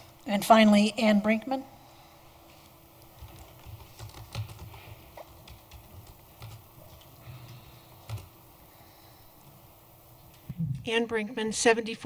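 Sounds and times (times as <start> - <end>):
laptop keys typing: 3.0 - 8.4.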